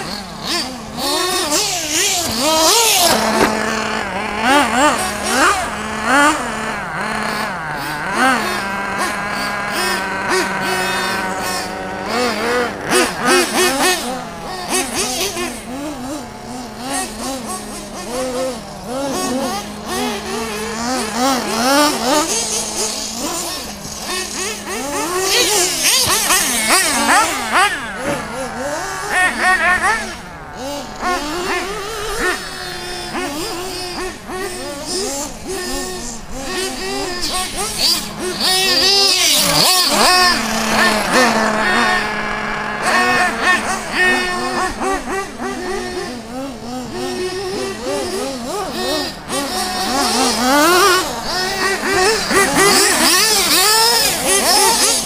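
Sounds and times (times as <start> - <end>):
model car motors revving: 0.0 - 55.0.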